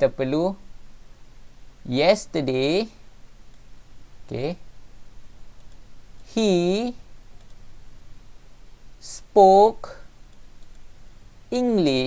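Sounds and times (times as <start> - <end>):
man speaking: 0.0 - 0.6, 1.8 - 3.0, 4.3 - 4.6, 6.3 - 7.0, 11.5 - 12.0
computer clicks: 5.6 - 6.3, 7.4 - 7.6, 10.3 - 10.9.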